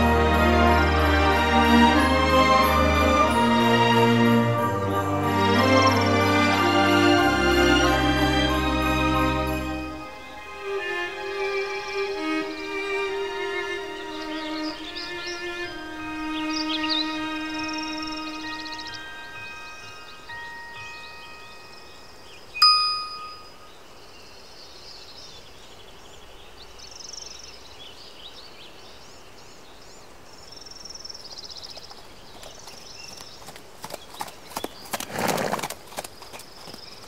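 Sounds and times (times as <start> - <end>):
held orchestral string notes: 0.0 - 20.4
faint high chirps: 21.6 - 23.9
bright chime ringing: 22.6 - 23.7.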